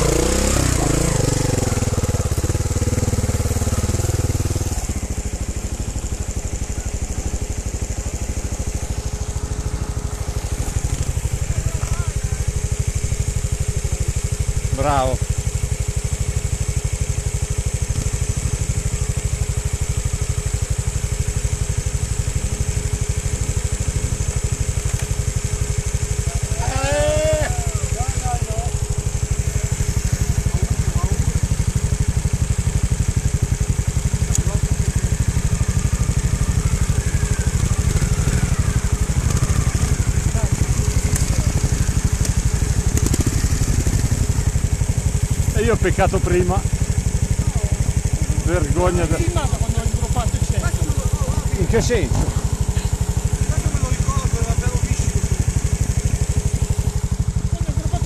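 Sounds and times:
motorcycle engine running at low revs: 0.0 - 58.0.

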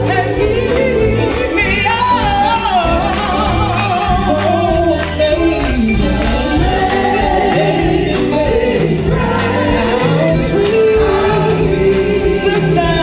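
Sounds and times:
gospel choir singing: 0.0 - 13.0
live band playing: 0.0 - 13.0.

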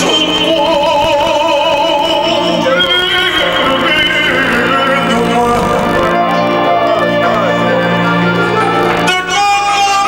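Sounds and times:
folk band music: 0.0 - 10.0.

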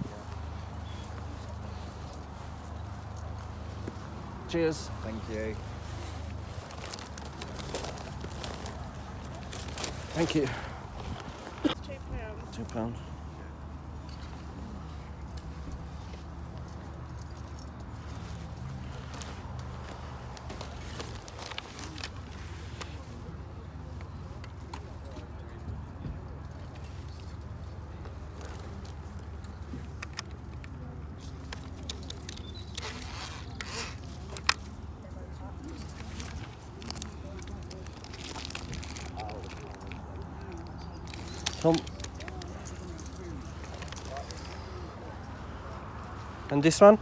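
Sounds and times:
plastic toy rubbing and scraping: 32.6 - 34.1.

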